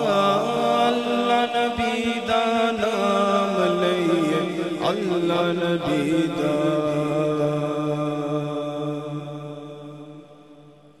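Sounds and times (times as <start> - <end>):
held vocal drone: 0.0 - 10.5.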